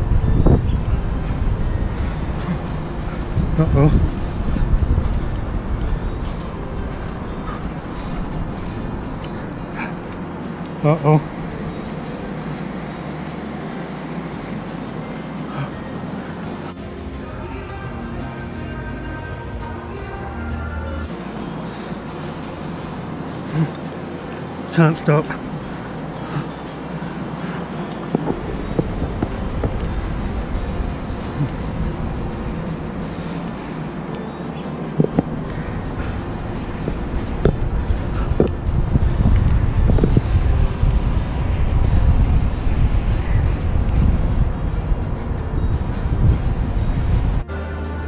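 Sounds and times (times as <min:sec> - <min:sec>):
wind buffeting microphone: 0:00.0 - 0:15.3, 0:24.5 - 0:47.5
background music: 0:00.0 - 0:48.0.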